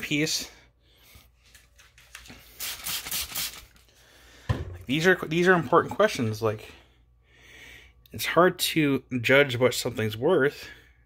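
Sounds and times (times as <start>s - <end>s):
spray bottle squirting water: 2.1s - 3.9s.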